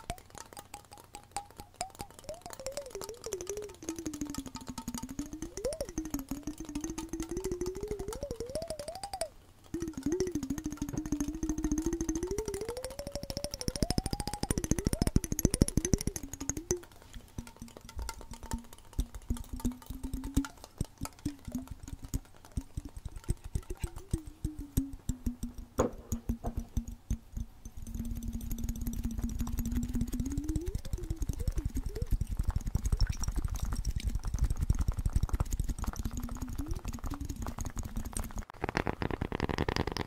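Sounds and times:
fingernails tapping on container: 13.3s - 31.8s.

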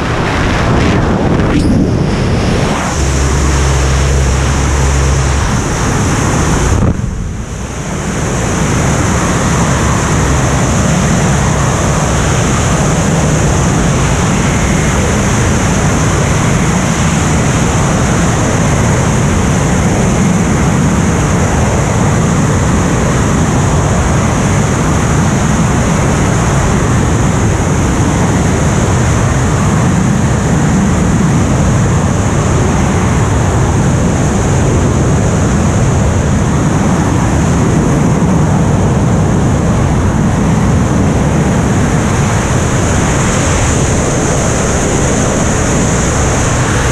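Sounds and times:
wind roaring over microphone: 0.0s - 46.9s.

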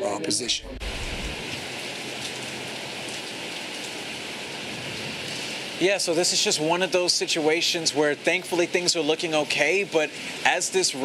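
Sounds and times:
heavy rain on pavement: 0.8s - 11.0s.

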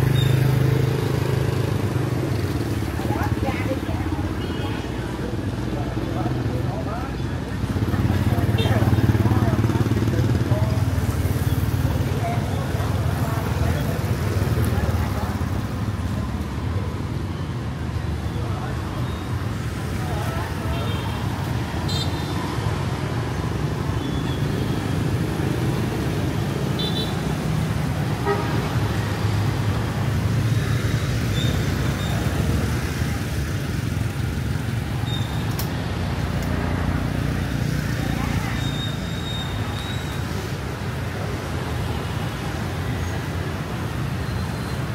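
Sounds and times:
motorbike engines passing: 0.0s - 44.9s
voices of passers-by: 0.0s - 44.9s.

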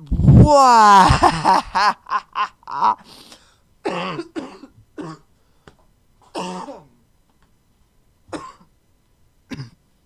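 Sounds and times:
man coughing and clearing throat: 3.8s - 5.3s, 6.2s - 7.0s, 8.3s - 8.7s, 9.5s - 9.8s.

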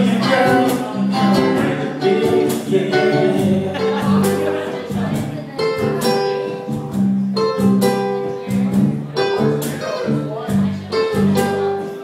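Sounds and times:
bass line: 0.0s - 12.0s
cajon beat: 0.0s - 12.0s
ukulele strumming chords: 0.0s - 12.0s.

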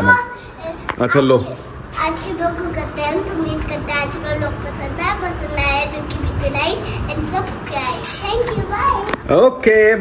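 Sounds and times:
girl talking playfully: 0.0s - 9.2s.

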